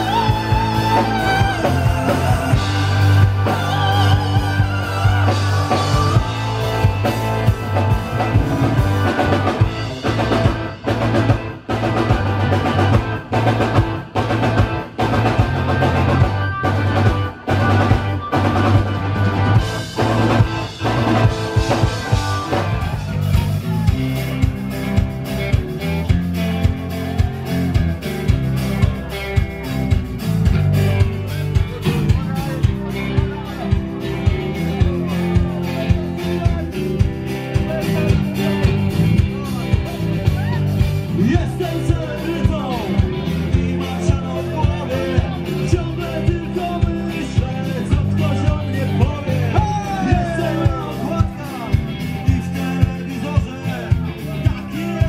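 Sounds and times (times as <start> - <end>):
drum fills: 0.0 - 55.0
live rock band playing: 0.0 - 55.0.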